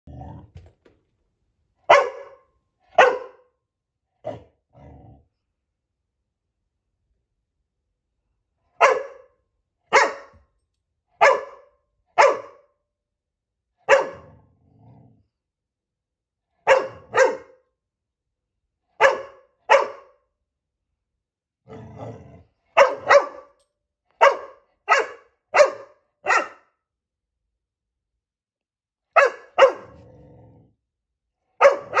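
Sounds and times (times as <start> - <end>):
puppy barking: 1.9 - 3.5, 8.8 - 10.4, 11.2 - 12.7, 13.8 - 14.4, 16.6 - 17.6, 19.0 - 20.2, 22.7 - 23.6, 24.2 - 26.7, 29.1 - 30.0, 31.6 - 32.0.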